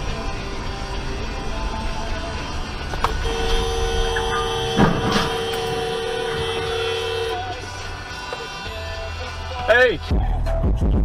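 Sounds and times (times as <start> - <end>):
background music: 0.0 - 11.0
car horn two-note blast: 3.1 - 7.7.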